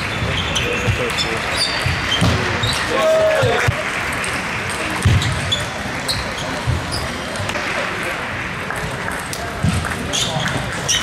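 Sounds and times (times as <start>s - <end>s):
murmur of hall chatter: 0.0s - 11.0s.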